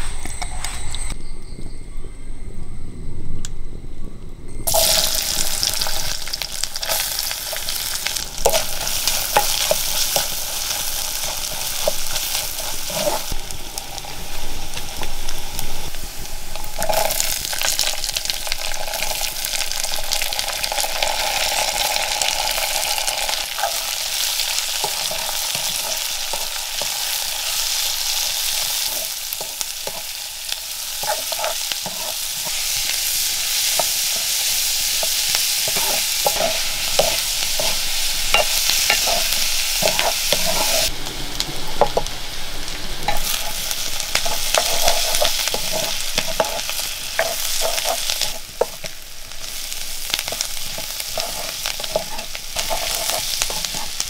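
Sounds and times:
shallots sizzling in hot oil: 4.6s - 54.0s
spatula knocking and scraping pan: 28.5s - 40.9s, 43.1s - 48.9s, 50.2s - 54.0s.

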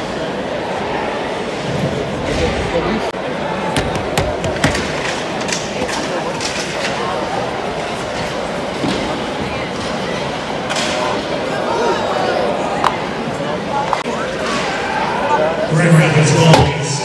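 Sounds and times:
arena crowd murmur: 0.0s - 17.0s
hockey sticks and puck knocking: 3.8s - 7.0s.

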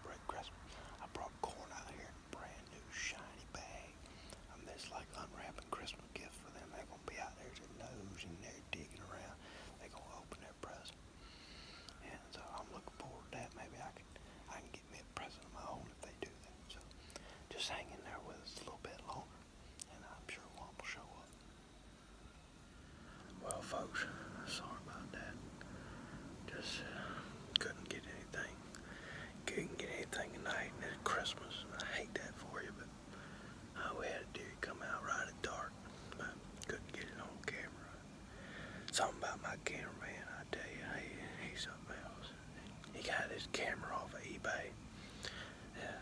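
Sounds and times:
man whispering: 0.0s - 21.5s, 23.1s - 46.0s.

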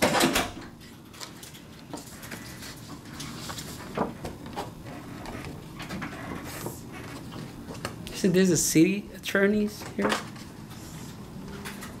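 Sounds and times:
office background noise: 0.0s - 12.0s.

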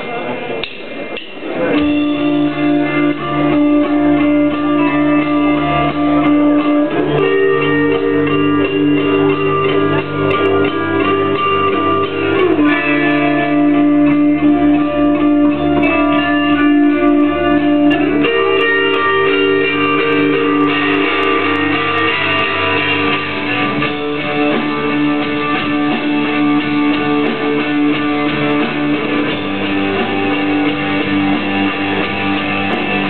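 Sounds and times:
electric guitars sustained chords: 1.6s - 33.0s.

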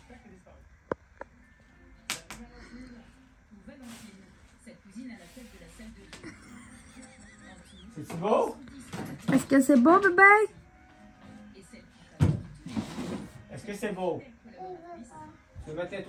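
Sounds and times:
television voices and music: 0.0s - 16.0s.

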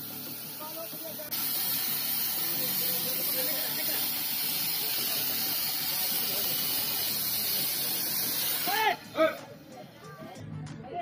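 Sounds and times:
loud hiss: 0.0s - 9.7s.

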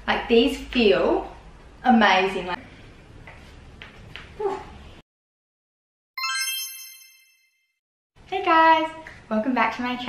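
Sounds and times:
bell-like chime: 6.2s - 7.8s.

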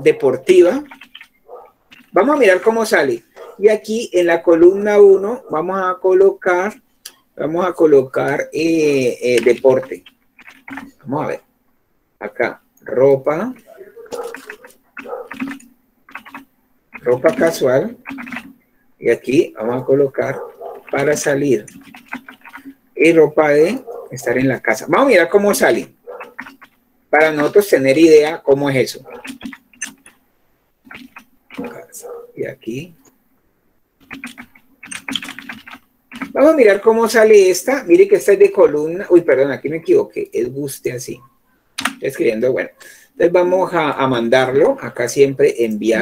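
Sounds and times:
keyboard keys clicking: 13.6s - 18.6s, 25.4s - 27.8s, 29.0s - 30.2s, 34.0s - 36.8s.

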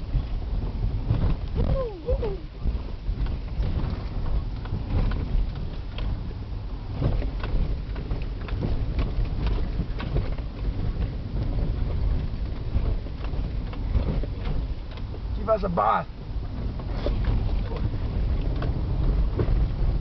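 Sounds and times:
engine and tyres rumbling: 0.0s - 20.0s
car body knocks and rattles: 16.3s - 20.0s.

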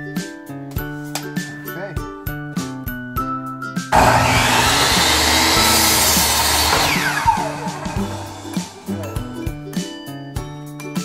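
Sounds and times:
saw blade spinning down whine: 4.0s - 9.1s
miter saw cutting wood: 4.0s - 9.2s.

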